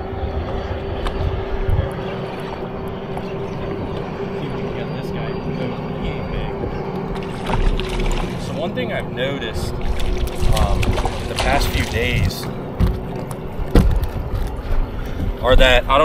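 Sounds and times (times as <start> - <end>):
steady hum: 0.0 - 16.0
water noise around boat: 0.0 - 16.0
wind: 0.0 - 16.0
fish splashing at surface: 7.2 - 8.5.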